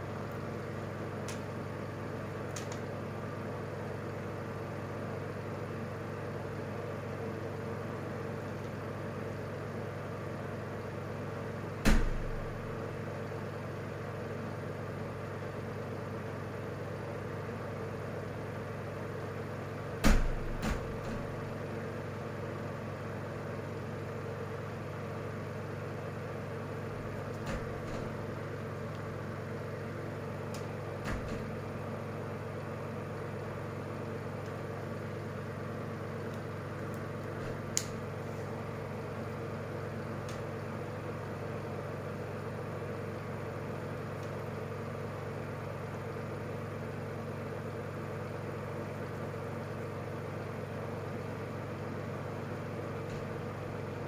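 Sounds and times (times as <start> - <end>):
low background hum: 0.0 - 54.0.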